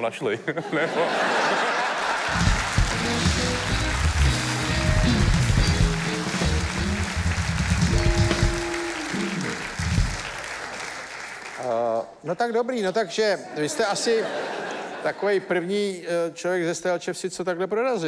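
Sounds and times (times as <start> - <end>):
audience applauding: 1.1 - 12.1
live band with bass and drums: 2.3 - 10.3.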